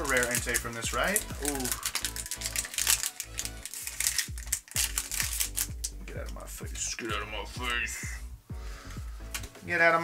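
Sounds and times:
foil wrapper crinkling: 0.0s - 6.0s
trading cards clicking: 0.0s - 6.4s, 9.2s - 9.6s
bass-heavy background music: 0.0s - 10.0s.

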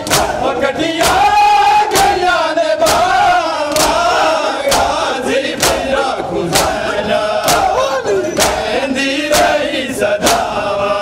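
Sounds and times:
men slapping chests in unison: 0.0s - 10.9s
chanting voices: 0.0s - 11.0s.

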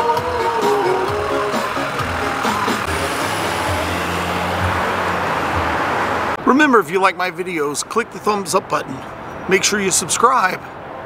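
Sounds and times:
music: 0.0s - 4.8s
bus engine hum: 0.0s - 6.4s
street traffic noise: 0.0s - 11.0s.

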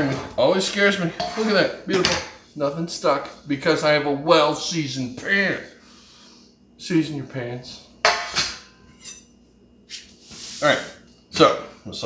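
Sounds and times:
metal pan clanking on countertop: 8.0s - 8.6s.

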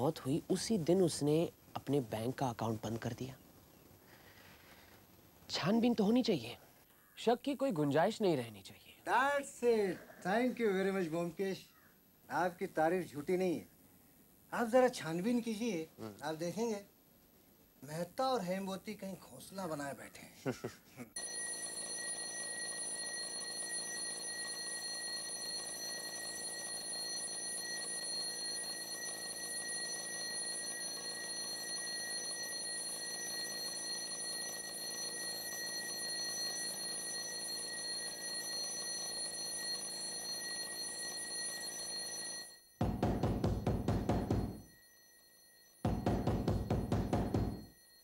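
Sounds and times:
alarm clock bell ringing: 21.2s - 48.0s.

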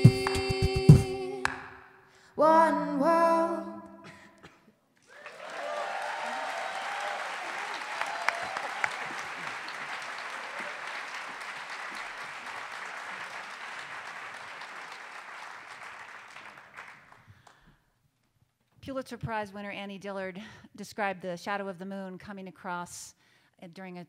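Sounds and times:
whoops: 5.0s - 9.6s, 10.3s - 11.1s
audience applauding: 5.0s - 17.6s.

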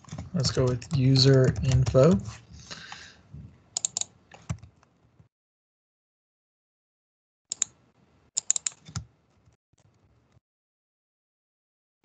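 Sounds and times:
computer keyboard keystrokes: 0.0s - 3.0s, 3.8s - 4.8s, 8.4s - 9.1s.

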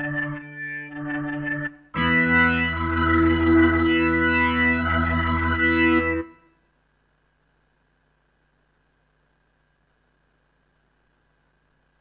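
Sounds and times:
guitar synthesizer notes and chords: 0.0s - 6.4s.

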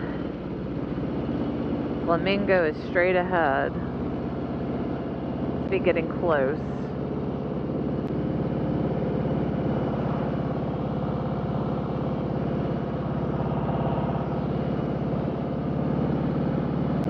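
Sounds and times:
motorcycle engine cruising: 0.0s - 17.0s
road noise: 0.0s - 17.0s.

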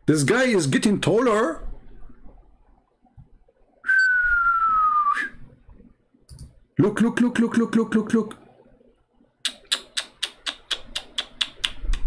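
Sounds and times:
person whistling a falling note: 3.9s - 5.4s.

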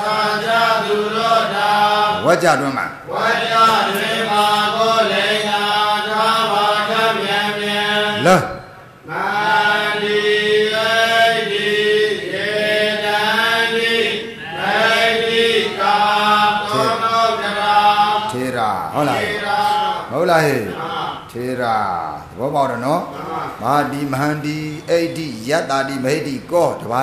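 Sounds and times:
man chanting: 0.0s - 27.0s.

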